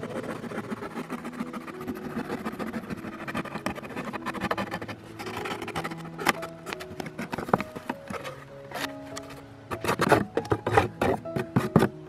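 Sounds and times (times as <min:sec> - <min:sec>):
blade sawing through cardboard: 0:00.0 - 0:08.9, 0:09.7 - 0:12.0.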